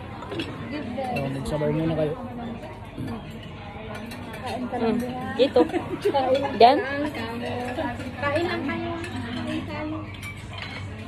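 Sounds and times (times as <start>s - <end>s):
cutlery and dishes clinking: 0.0s - 11.0s.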